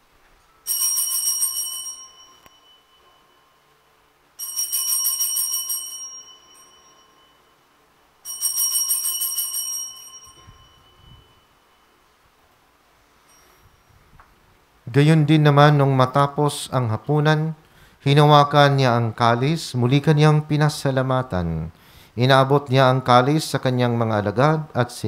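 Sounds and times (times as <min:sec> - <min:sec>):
altar bells jingling: 0:00.6 - 0:03.8, 0:04.4 - 0:12.1, 0:13.2 - 0:14.1.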